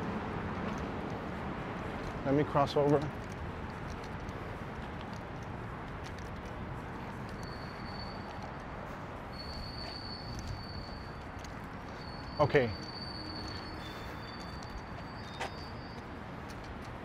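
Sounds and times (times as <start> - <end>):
faint footstep-like clicks: 0.0 - 17.0
low city background rush: 0.0 - 17.0.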